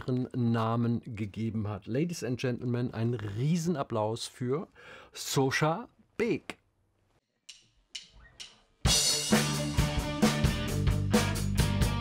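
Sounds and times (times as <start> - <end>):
live rock band playing: 8.9 - 12.0.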